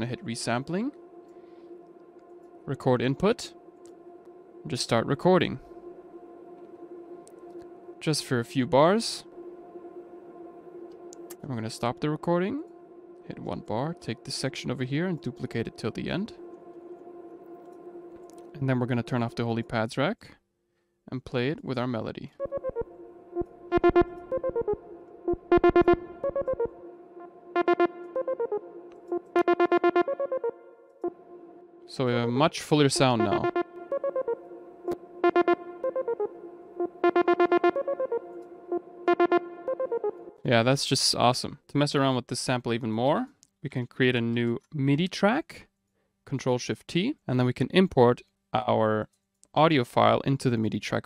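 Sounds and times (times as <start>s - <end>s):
sustained synth pad chord: 0.0s - 19.7s, 22.4s - 40.5s.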